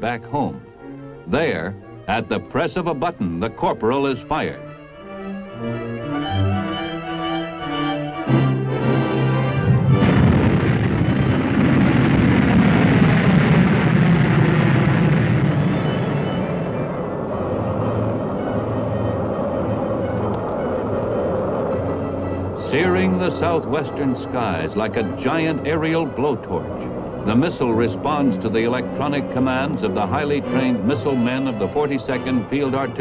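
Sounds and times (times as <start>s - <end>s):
orchestral film music: 0.0s - 11.7s, 15.6s - 33.0s.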